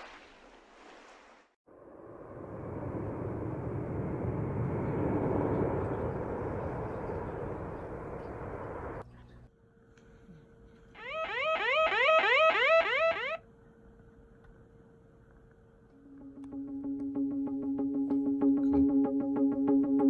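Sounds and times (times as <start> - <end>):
loud rumbling noise: 1.7 - 9.0.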